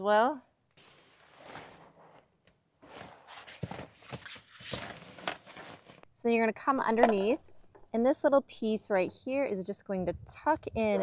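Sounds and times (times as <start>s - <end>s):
fabric rustling: 0.8s - 6.1s.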